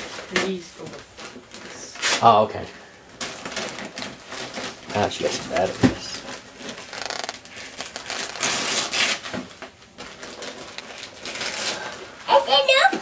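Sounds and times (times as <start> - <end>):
wrapping paper tearing and crumpling: 0.0 - 2.5, 3.2 - 12.8.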